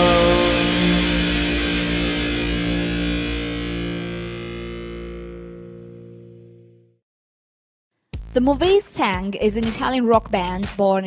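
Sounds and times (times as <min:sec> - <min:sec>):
distorted electric guitar chord: 0:00.0 - 0:07.0.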